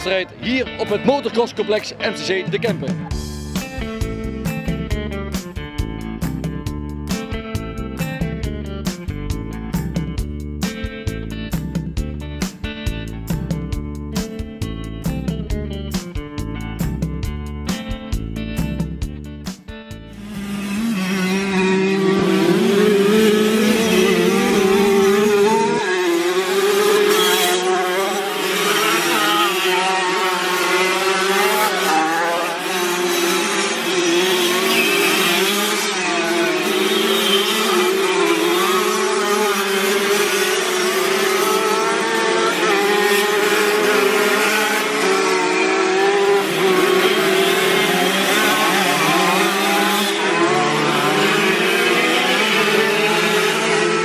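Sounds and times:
motocross bikes revving: 20.2s - 54.0s.

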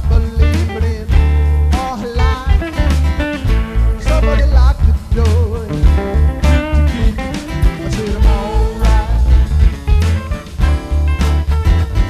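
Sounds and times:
man singing: 0.0s - 10.2s
acoustic guitars strumming: 0.0s - 12.0s
heavy low bass pulse: 0.0s - 12.0s.

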